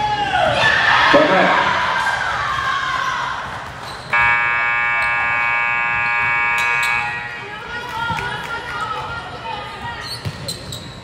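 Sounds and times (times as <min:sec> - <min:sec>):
voices in a hall: 0:00.0 - 0:11.0
scoreboard horn blast: 0:04.2 - 0:07.4.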